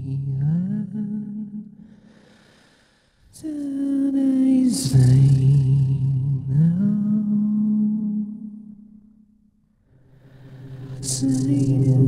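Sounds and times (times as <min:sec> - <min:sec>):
person humming held notes: 0:10.9 - 0:12.0.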